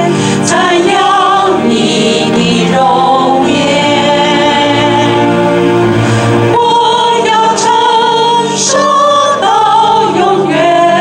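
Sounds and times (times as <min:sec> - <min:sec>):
woman singing worship song: 0:00.0 - 0:05.8, 0:06.5 - 0:11.0
congregation singing: 0:00.0 - 0:11.0.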